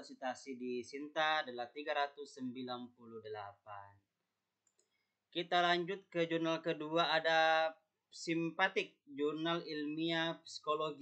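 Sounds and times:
man's voice: 0.0 - 4.0, 5.4 - 11.0.

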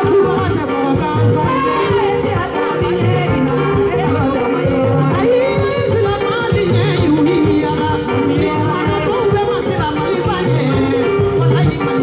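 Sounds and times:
live band music: 0.0 - 12.0
repeating bass line: 0.0 - 12.0
woman singing: 0.0 - 12.0.

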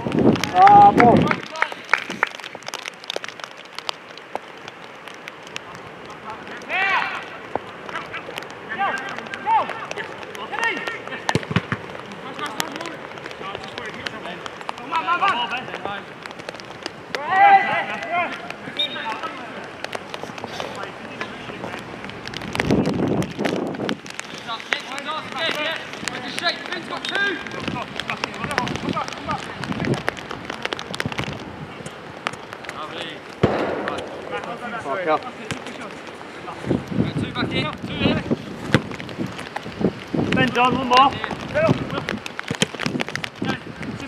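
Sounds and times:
players shouting: 6.3 - 12.7, 17.1 - 19.9.

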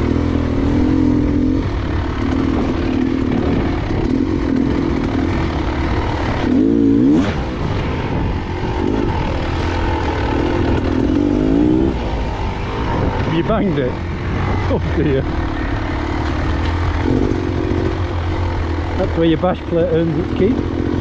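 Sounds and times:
motorbike engine revving: 0.0 - 21.0.

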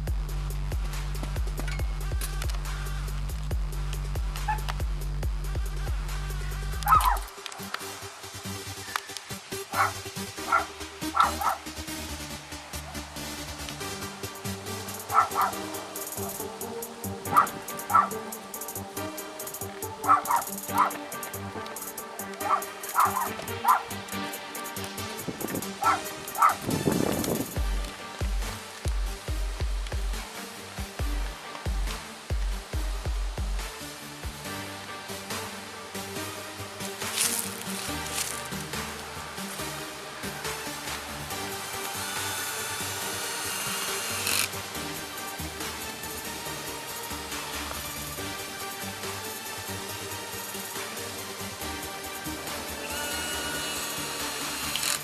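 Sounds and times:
background music with quick beat: 0.0 - 55.0
dog barking: 6.9 - 7.3, 9.7 - 11.7, 15.1 - 16.4, 17.3 - 18.2, 20.0 - 21.0, 22.3 - 24.0, 25.8 - 26.7
cordless drill whining on metal: 41.8 - 44.6, 52.7 - 55.0.

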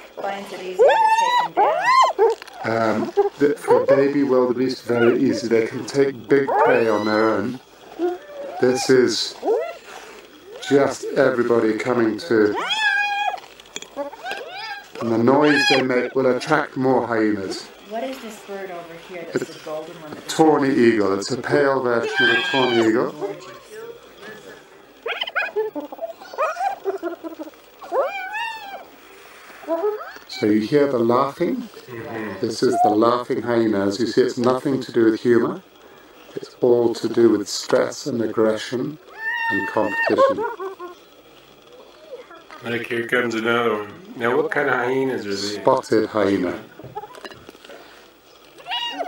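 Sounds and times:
hyena squealing call: 0.6 - 4.2, 4.8 - 5.5, 6.4 - 11.1, 12.5 - 13.4, 14.0 - 16.2, 22.0 - 23.2, 25.0 - 29.0, 29.6 - 30.6, 32.0 - 33.0, 39.1 - 41.0, 48.6 - 49.0
hyenas giggling: 0.7 - 5.8, 25.0 - 28.9, 39.5 - 41.0.

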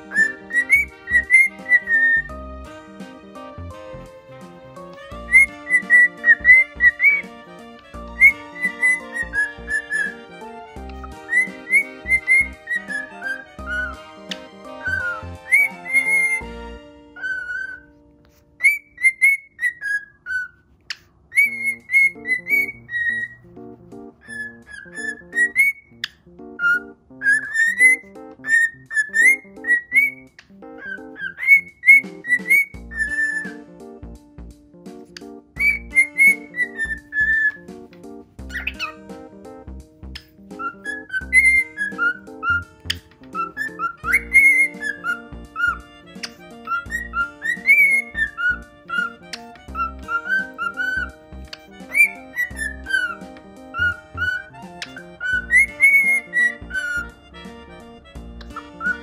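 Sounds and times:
cockatiel whistling: 0.0 - 2.3, 5.0 - 7.3, 8.1 - 10.3, 10.9 - 16.4, 17.2 - 17.9, 18.6 - 20.6, 21.3 - 23.5, 24.2 - 33.6, 35.6 - 37.6, 38.5 - 39.0, 40.2 - 57.2, 58.4 - 59.0.

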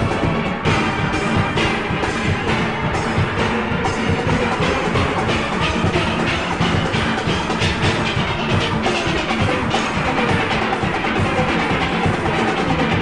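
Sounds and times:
driving percussion beat: 0.0 - 13.0
steelpans playing melody: 0.0 - 13.0.

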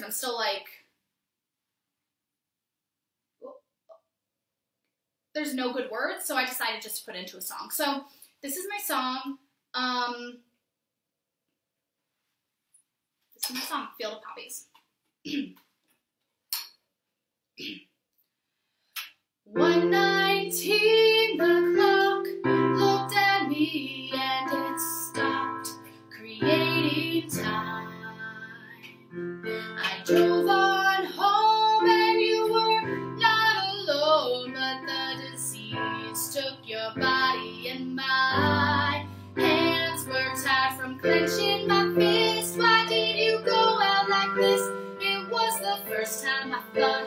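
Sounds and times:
woman singing: 19.5 - 47.0.

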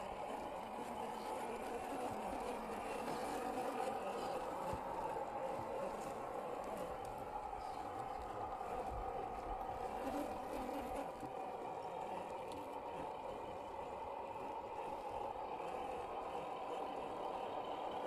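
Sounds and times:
toy car electric motor whining: 0.0 - 18.0.

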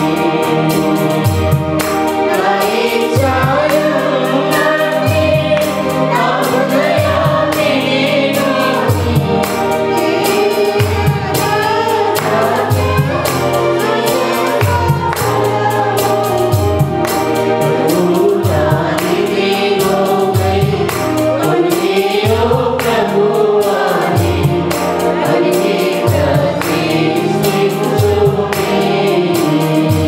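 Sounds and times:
choir singing in unison: 0.0 - 30.0.

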